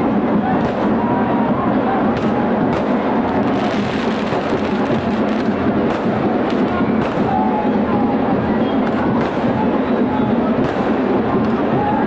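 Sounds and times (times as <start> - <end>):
dense crowd din: 0.0 - 12.0
firecrackers banging: 0.0 - 12.0.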